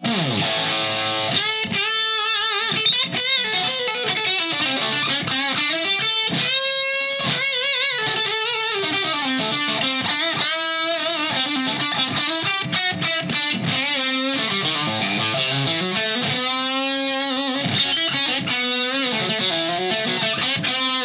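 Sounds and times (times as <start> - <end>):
electric guitar lead lines: 0.0 - 21.0.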